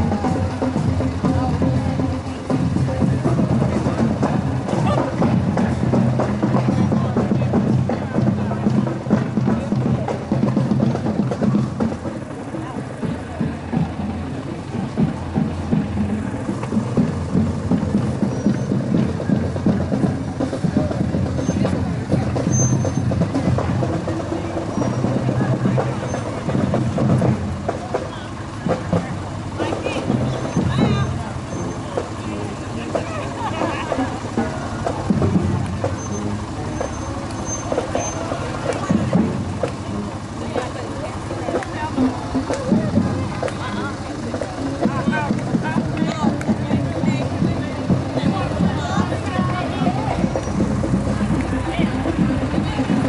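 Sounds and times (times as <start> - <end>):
cars driving slowly past: 0.0 - 53.0
music playing: 0.0 - 53.0
people talking outdoors: 0.0 - 53.0
traffic: 0.0 - 53.0.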